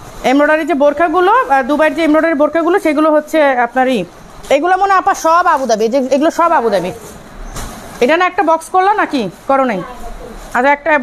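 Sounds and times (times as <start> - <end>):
even background noise: 0.0 - 11.0
woman speaking: 0.2 - 7.2, 8.0 - 11.0.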